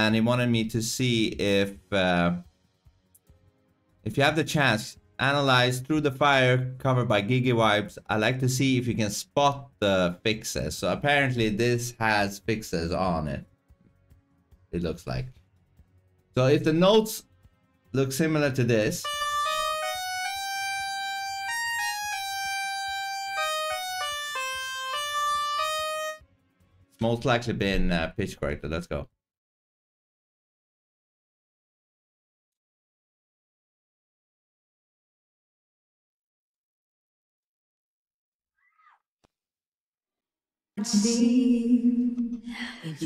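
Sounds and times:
synthesized pitch-corrected melody: 19.0 - 26.2.

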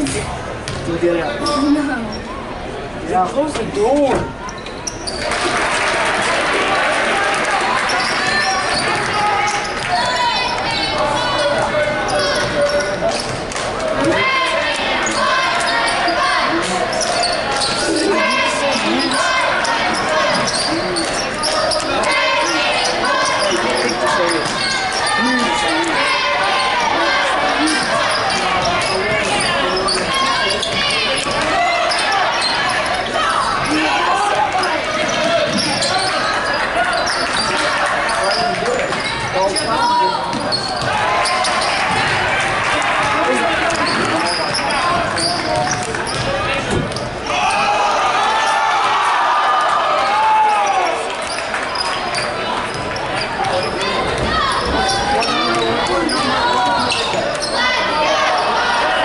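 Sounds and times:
murmur of voices: 0.0 - 59.0.

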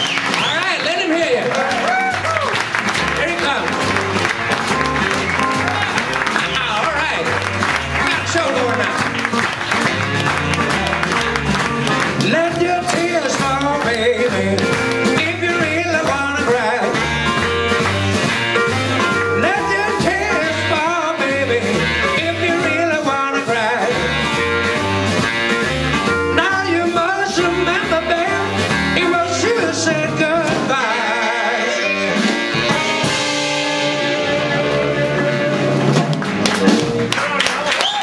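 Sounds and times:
bass line: 0.0 - 38.0
drums: 0.0 - 38.0
electric guitar lead: 2.2 - 6.5.

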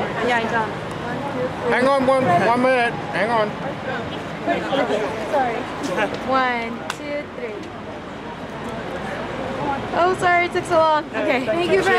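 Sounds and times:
street noise: 0.0 - 11.9.

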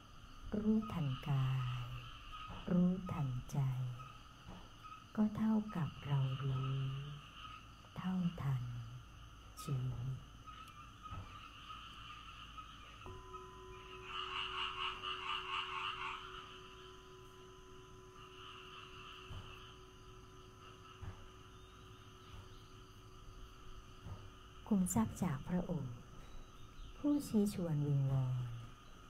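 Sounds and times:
faint steady tone: 0.0 - 29.0
frogs croaking in bursts: 0.0 - 29.0.

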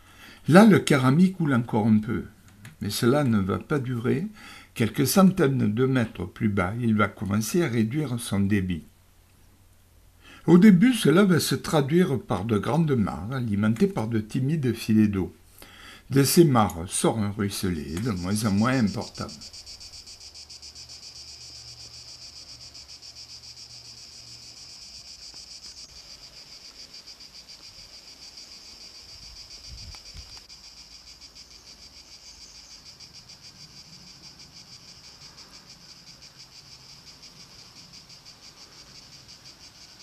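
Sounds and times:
cicadas singing: 10.2 - 40.0.

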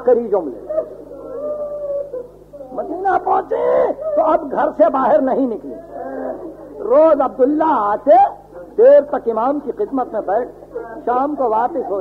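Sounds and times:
tape recording hum: 0.0 - 12.0
person wailing and weeping: 0.6 - 4.7.

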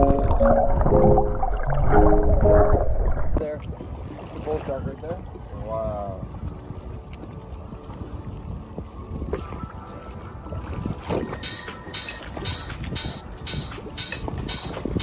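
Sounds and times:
sea water noise: 0.0 - 15.0
wind: 3.2 - 15.0
music with a regular beat: 11.3 - 15.0.

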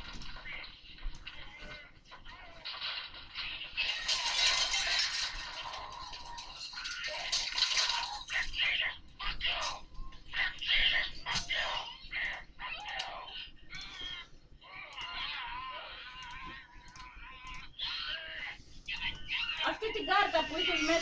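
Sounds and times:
indistinct background voices: 5.6 - 21.0.

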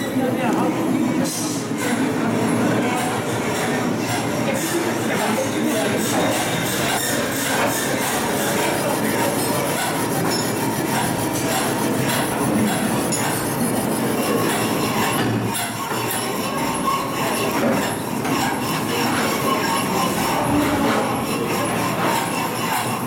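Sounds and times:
loud mechanical noise: 0.0 - 23.0
high metallic squealing: 2.9 - 23.0.

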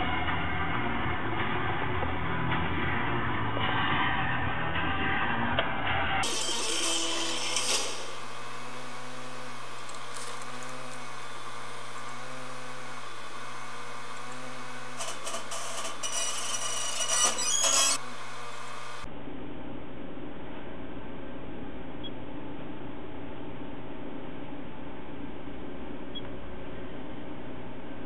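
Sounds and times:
drive seeking clicks: 6.2 - 18.0
disc drive whirring: 6.2 - 19.1.

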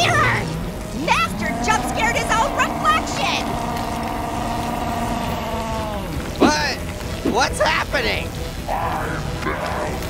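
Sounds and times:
high-pitched cartoon voices chattering: 0.0 - 6.2
wavering wail: 0.8 - 6.4.

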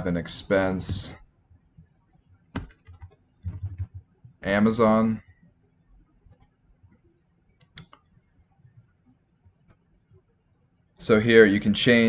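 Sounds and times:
keyboard keystrokes: 2.6 - 4.0.

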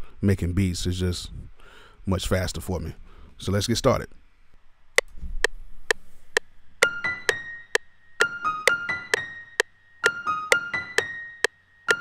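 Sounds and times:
metronome clicks: 6.4 - 12.0.

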